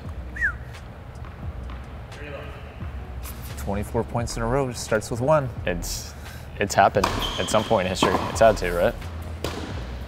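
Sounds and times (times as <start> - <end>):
low steady hall hum: 0.0 - 10.0
short falling squeak: 7.2 - 7.6.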